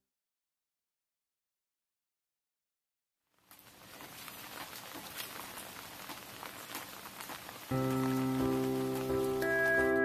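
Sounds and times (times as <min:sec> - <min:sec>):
rain pattering: 0:03.3 - 0:10.0
small crackles: 0:03.3 - 0:10.0
sustained keyboard chords: 0:07.7 - 0:10.0.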